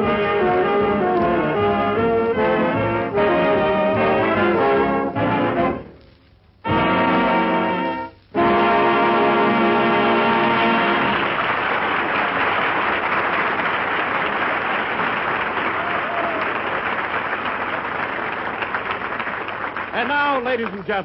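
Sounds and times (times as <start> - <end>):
orchestra closing chord: 6.6 - 11.3
audience applauding: 9.3 - 21.0.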